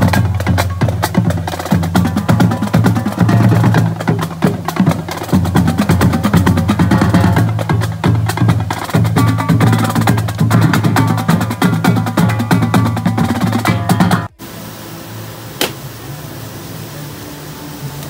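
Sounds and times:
snare and tenor drum rolls: 0:00.0 - 0:14.3.

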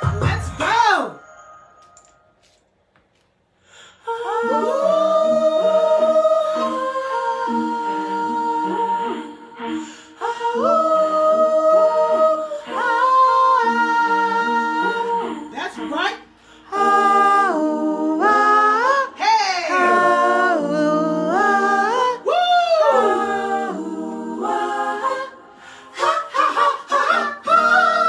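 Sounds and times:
voices singing in harmony: 0:04.0 - 0:28.0.

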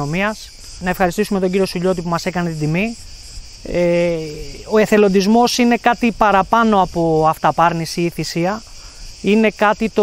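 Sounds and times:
man speaking: 0:00.0 - 0:03.0, 0:03.6 - 0:10.0
insects chirping: 0:00.0 - 0:10.0.

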